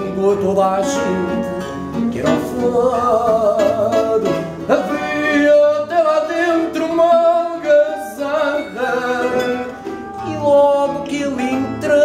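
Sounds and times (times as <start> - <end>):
man singing long notes: 0.0 - 12.0
plucked guitars: 0.0 - 12.0.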